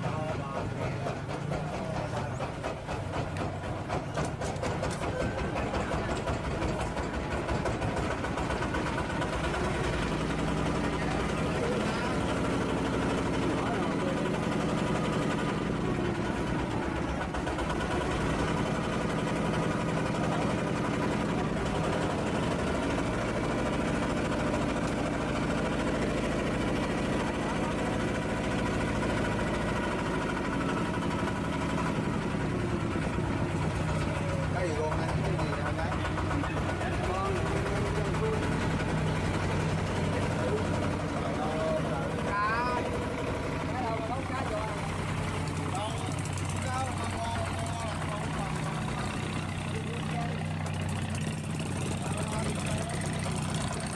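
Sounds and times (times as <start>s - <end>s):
ferry engine running: 0.0s - 53.9s.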